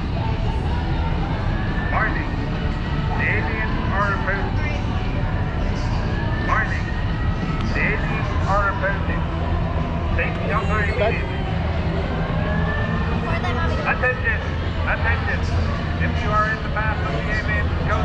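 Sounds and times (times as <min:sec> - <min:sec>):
steady low rumble: 0:00.0 - 0:18.0.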